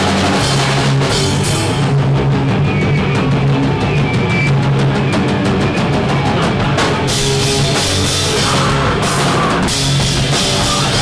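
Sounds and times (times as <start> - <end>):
heavy rock band playing: 0.0 - 11.0.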